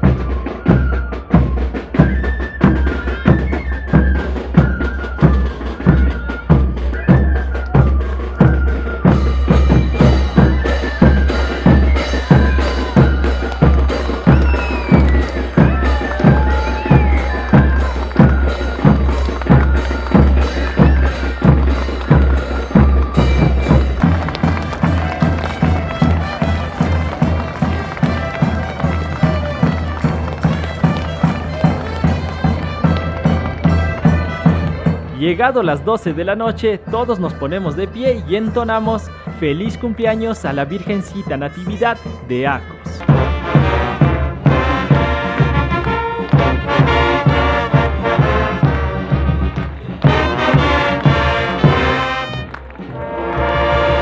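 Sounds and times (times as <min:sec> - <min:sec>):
reedy wind instrument melody: 0:00.0 - 0:54.0
steady drum beat: 0:00.0 - 0:54.0.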